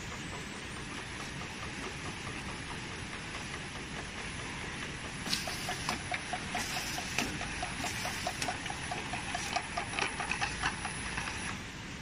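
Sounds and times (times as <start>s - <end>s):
labeling machine ticking: 0.1s - 11.6s
sharp mechanical clicks: 0.7s - 11.6s.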